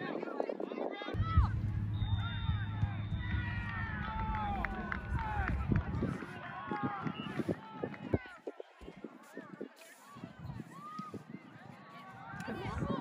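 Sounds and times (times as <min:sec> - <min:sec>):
low microphone rumble: 0:01.2 - 0:08.3.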